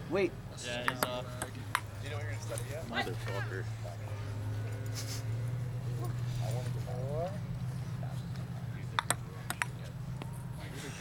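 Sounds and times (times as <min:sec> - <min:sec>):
steady low hum: 0:00.0 - 0:11.0
faint voices: 0:00.1 - 0:11.0
table tennis ball clicks: 0:09.0 - 0:09.8.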